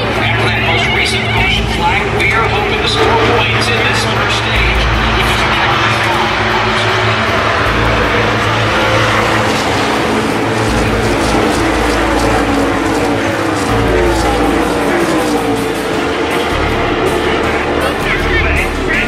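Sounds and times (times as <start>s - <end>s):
stock cars passing at speed: 0.0s - 19.0s.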